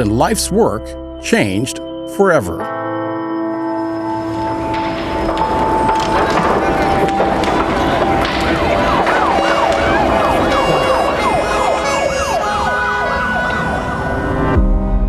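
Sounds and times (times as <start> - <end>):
music: 0.0 - 15.0
loud street noise: 3.8 - 14.6
emergency siren yelping: 4.1 - 14.6.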